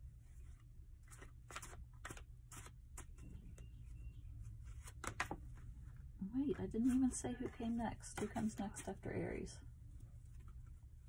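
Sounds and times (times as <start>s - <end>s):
low steady hum: 0.0s - 11.0s
cards rustling and tapping: 0.4s - 6.0s, 6.8s - 9.0s.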